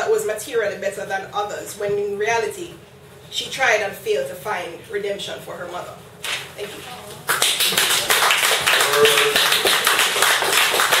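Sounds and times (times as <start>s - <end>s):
audience applauding: 7.3s - 11.0s.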